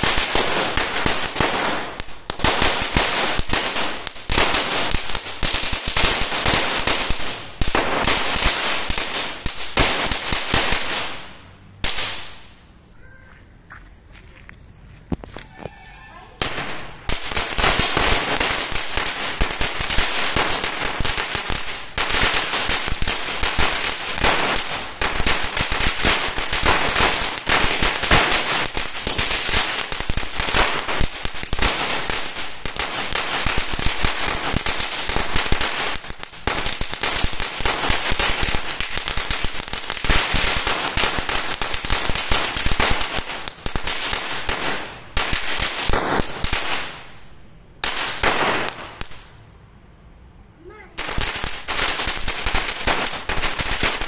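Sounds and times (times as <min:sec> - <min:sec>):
firecracker string popping: 0:15.1 - 0:15.8.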